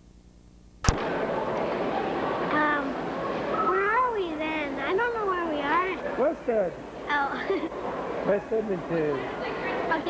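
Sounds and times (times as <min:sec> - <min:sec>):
shopping mall babble: 0:00.9 - 0:10.0.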